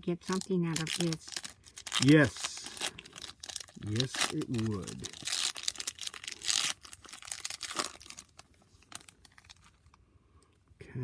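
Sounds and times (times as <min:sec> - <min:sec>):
foil wrapper tearing and crinkling: 0:00.2 - 0:09.9.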